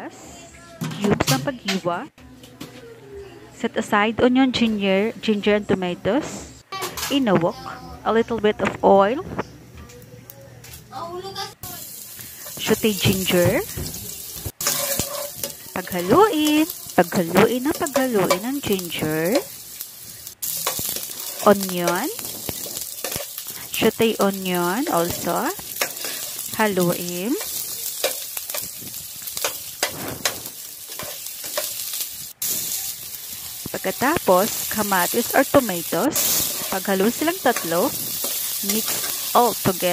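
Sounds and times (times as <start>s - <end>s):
ginger frying in hot oil: 11.6s - 39.9s
metal spatula scraping pan: 14.6s - 19.6s, 20.4s - 23.6s, 24.9s - 32.8s, 36.2s - 39.5s.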